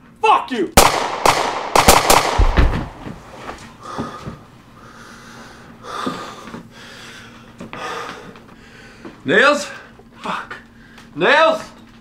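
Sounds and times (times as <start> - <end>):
handgun shot: 0.8 - 3.0
deep thump: 2.4 - 3.2
man breathing hard: 3.6 - 9.2, 9.8 - 11.2.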